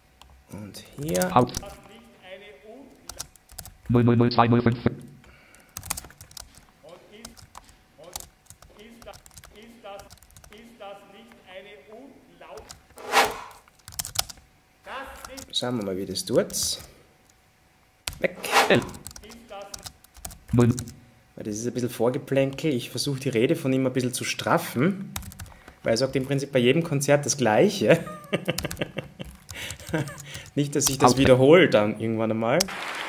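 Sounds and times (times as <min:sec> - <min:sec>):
keyboard and mouse clicks: 0:00.8 - 0:01.7, 0:05.0 - 0:10.6
computer keyboard clicking: 0:00.8 - 0:01.8, 0:03.1 - 0:03.8, 0:05.5 - 0:10.6, 0:13.7 - 0:14.4, 0:18.9 - 0:21.0, 0:25.2 - 0:25.6, 0:28.5 - 0:31.0
short loud rush of noise: 0:13.0 - 0:13.6, 0:18.4 - 0:19.0.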